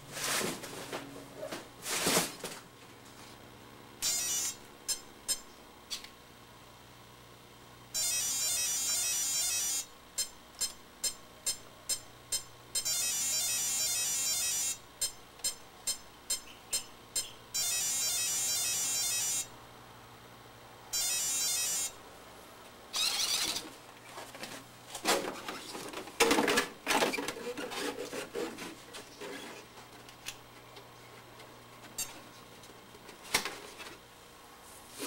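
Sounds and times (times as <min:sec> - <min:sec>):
short electronic beeps: 0:08.0 - 0:19.4, 0:21.0 - 0:21.9.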